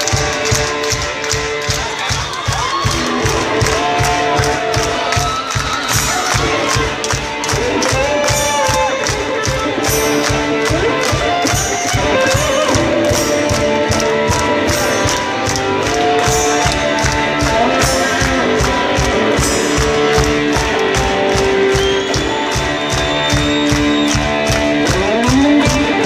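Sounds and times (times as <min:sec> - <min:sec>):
electric guitars: 0:00.0 - 0:26.0
steady drum beat: 0:00.0 - 0:26.0.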